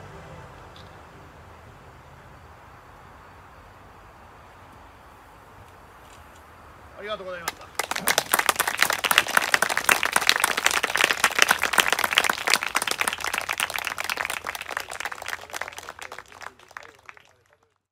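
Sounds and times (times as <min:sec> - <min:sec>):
audience applauding: 0:07.4 - 0:17.9.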